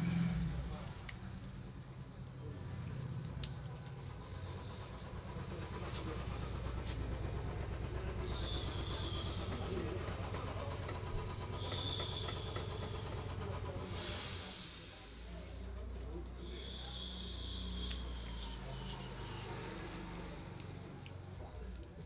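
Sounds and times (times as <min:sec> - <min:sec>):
hands rubbing cream on face: 0:17.8 - 0:22.0.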